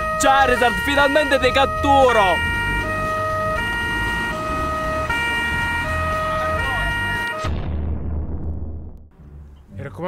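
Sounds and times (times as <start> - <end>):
two-tone police siren: 0.0 - 7.6
low rumble: 7.4 - 9.7.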